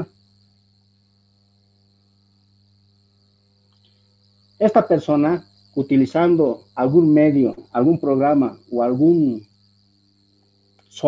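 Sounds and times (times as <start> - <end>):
high-pitched whine: 0.0 - 0.7, 1.8 - 11.0.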